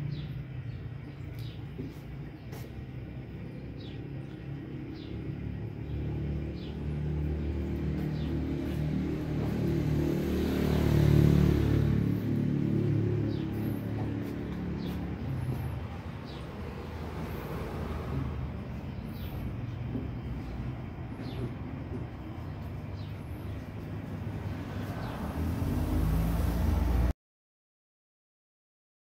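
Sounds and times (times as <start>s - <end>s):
motor vehicle passing: 0.0s - 27.1s.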